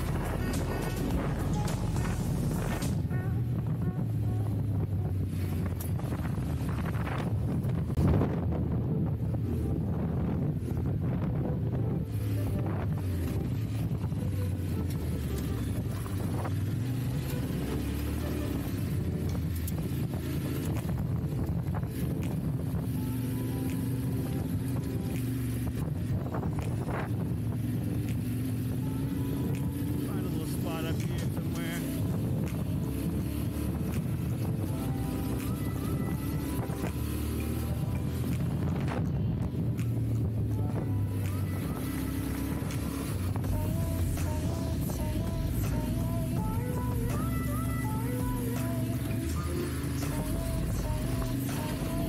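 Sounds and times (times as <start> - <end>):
motorcycle engine running: 0.0 - 52.0
wind noise on microphone: 0.0 - 52.0.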